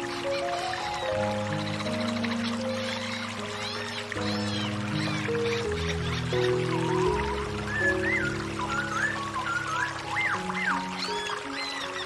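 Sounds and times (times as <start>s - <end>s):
soft meditation music: 0.0s - 12.0s
water pouring down a cascade: 0.0s - 12.0s.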